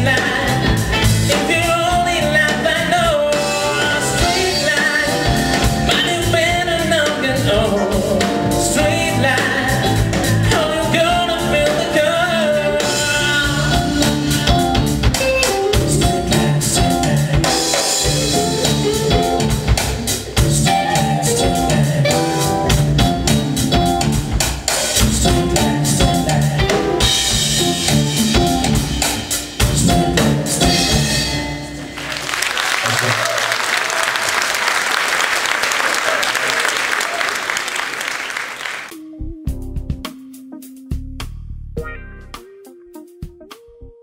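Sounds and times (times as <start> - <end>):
man singing: 0.0 - 14.9, 15.7 - 19.6, 20.2 - 23.4, 25.0 - 28.0
smooth jazz band playing: 0.0 - 34.5, 36.1 - 44.0.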